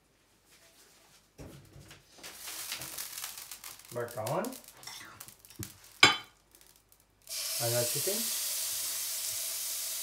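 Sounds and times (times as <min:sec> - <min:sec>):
hot oil crackling and sizzling: 0:02.2 - 0:10.0.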